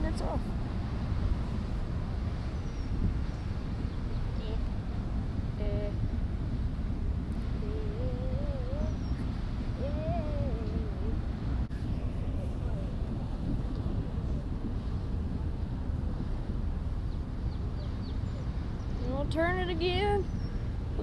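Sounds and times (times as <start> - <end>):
ship low rumble: 0.0 - 21.0
person humming: 7.6 - 9.0, 9.8 - 11.3.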